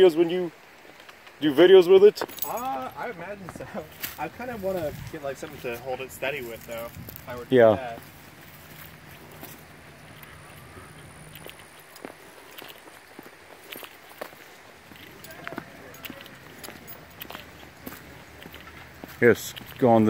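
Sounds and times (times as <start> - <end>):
footsteps on dry leaves: 3.7 - 20.0.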